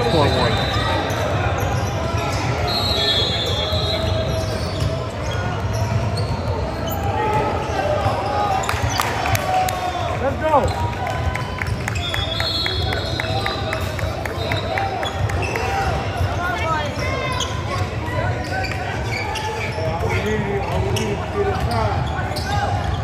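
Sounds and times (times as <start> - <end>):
voices echoing in gym: 0.0 - 23.0.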